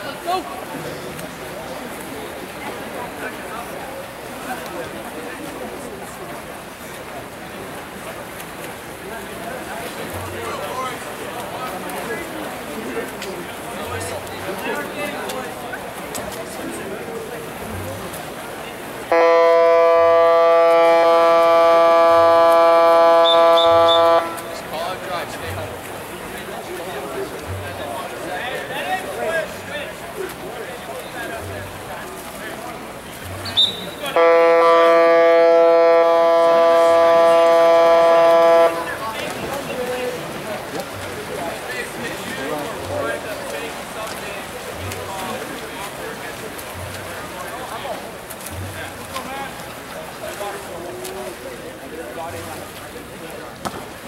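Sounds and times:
electronic game horn: 19.1 - 24.4, 34.1 - 38.9.

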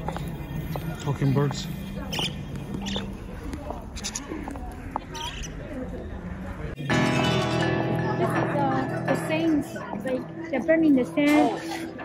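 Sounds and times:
people's voices: 0.0 - 12.0
budgerigars chirping: 0.7 - 3.2, 3.9 - 4.3.

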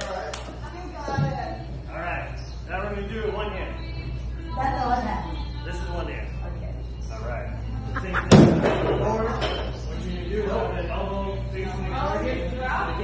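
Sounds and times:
music: 0.0 - 13.0.

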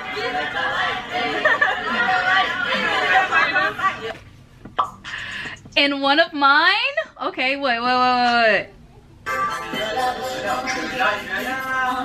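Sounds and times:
voices chattering: 0.0 - 4.2.

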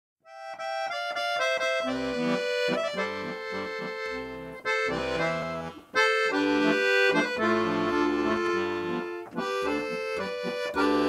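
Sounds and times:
accordion bass note: 0.2 - 11.0
accordion melody: 0.2 - 11.0.

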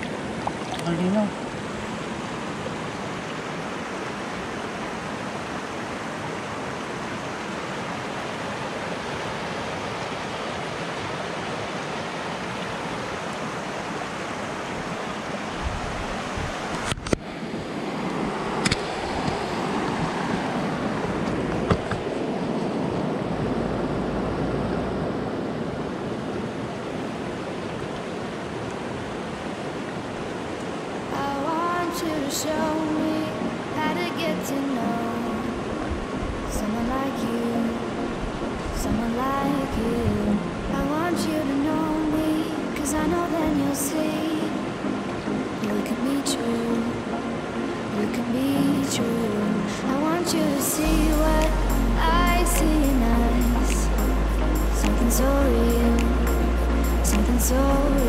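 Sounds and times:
river rushing over stones: 0.0 - 58.0.

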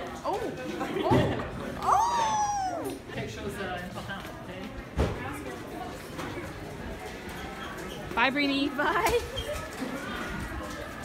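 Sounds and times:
person making meow-like cry: 1.9 - 3.0.

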